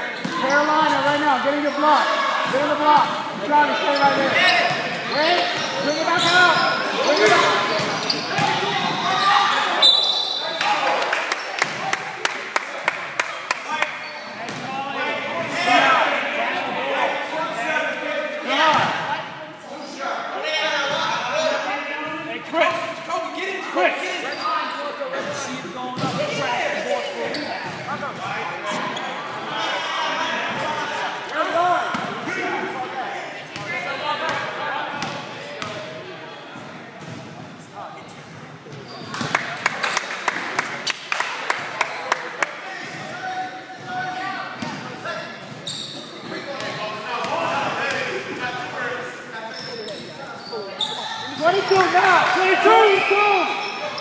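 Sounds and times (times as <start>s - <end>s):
voices echoing in a hall: 0.0s - 54.0s.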